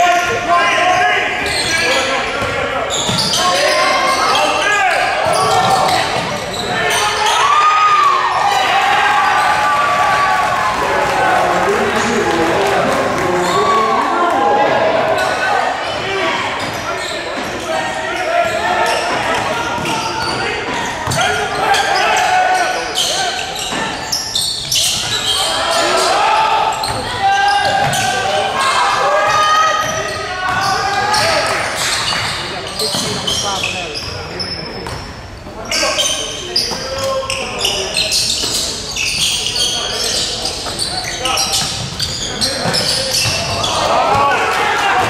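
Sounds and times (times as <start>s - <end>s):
voices echoing in gym: 0.0s - 45.0s.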